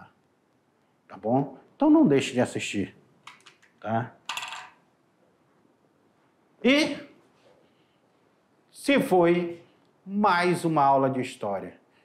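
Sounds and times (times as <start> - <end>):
rattling jingle: 4.3 - 4.8.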